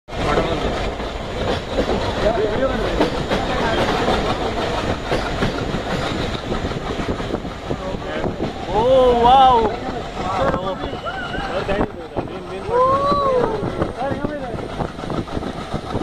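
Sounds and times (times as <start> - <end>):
train rumble on board: 0.1 - 16.0
wheels clacking over rails: 0.1 - 16.0.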